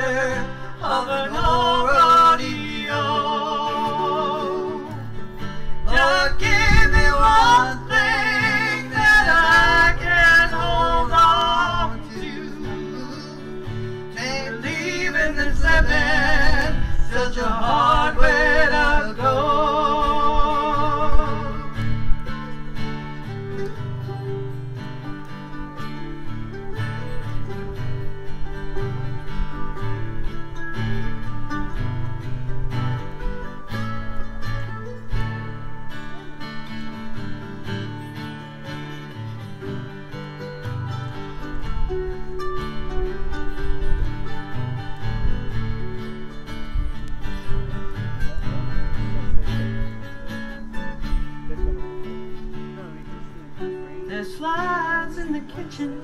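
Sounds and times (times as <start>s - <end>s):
acoustic guitar strumming: 0.0s - 56.0s
mandolin picking: 0.0s - 56.0s.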